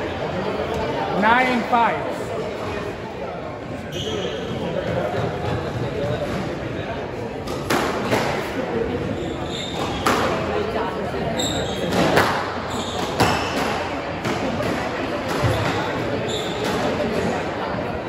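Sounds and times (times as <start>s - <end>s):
shoes squeaking on wooden floor: 9.1s - 10.1s.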